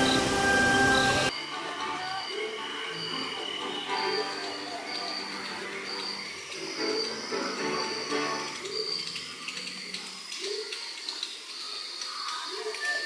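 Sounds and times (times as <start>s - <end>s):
soft background music: 0.0s - 9.2s.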